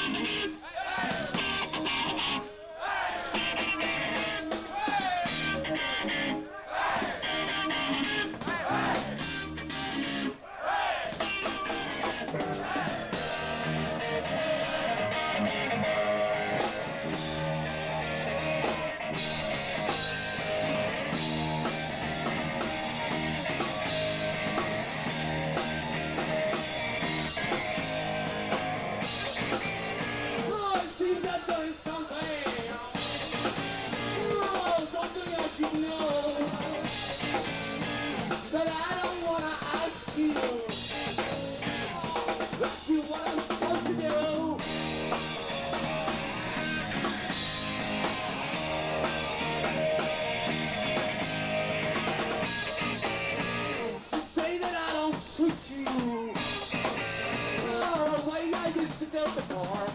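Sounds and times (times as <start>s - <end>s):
live rock band playing: 0.0s - 10.4s, 11.1s - 59.9s.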